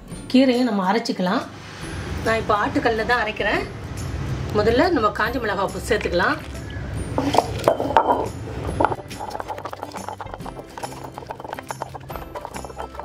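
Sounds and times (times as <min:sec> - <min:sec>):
background music: 0:00.0 - 0:13.0
stone roller grinding chillies: 0:05.8 - 0:13.0.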